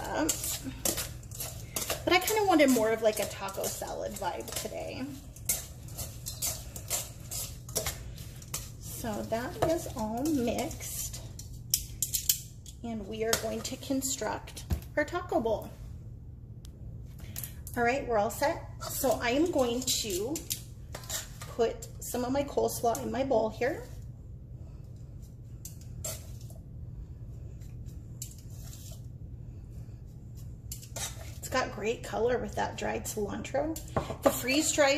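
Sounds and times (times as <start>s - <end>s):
cabbage rustling under tongs: 0.0s - 12.3s
steady low hum: 0.0s - 34.9s.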